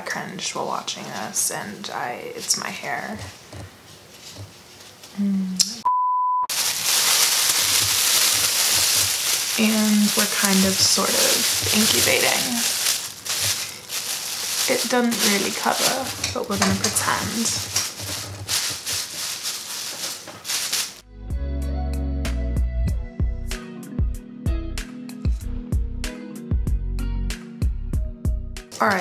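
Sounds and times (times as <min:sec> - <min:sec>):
high beep: 0:05.8 - 0:06.5
plastic cap crinkling: 0:06.5 - 0:21.0
background music with bass: 0:21.0 - 0:28.7.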